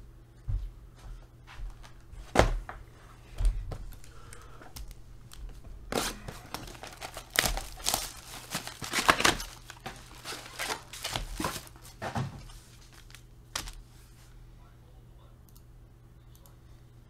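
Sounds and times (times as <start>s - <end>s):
shrink wrap tearing and crackling: 6.0s - 11.9s, 12.8s - 13.8s.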